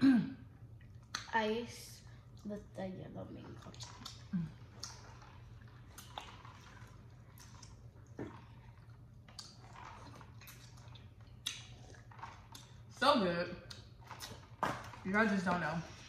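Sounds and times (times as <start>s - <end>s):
chewing and wet mouth sounds: 0.5s - 16.0s.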